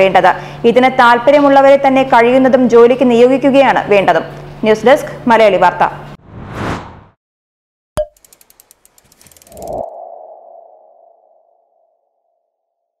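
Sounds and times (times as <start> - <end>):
quick ticks: 8.0 - 9.8.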